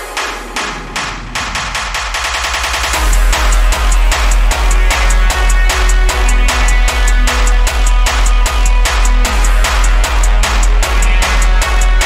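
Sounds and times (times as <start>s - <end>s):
electronic drum roll: 0.0s - 12.0s.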